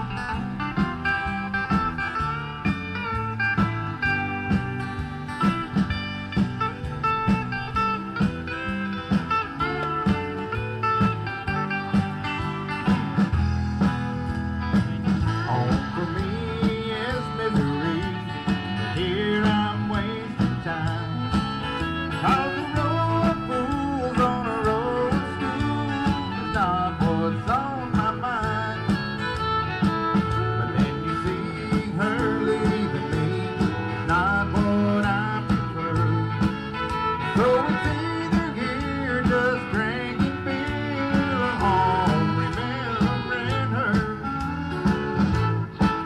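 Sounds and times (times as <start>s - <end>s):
country band playing: 0.0s - 46.0s.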